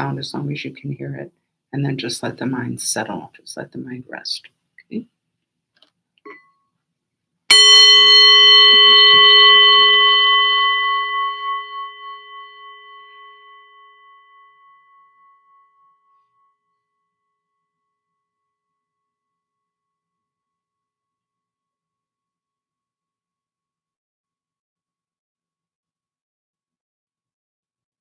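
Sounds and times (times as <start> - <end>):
singing bowl struck: 7.5 - 16.1
singing bowl ringing: 7.5 - 17.2.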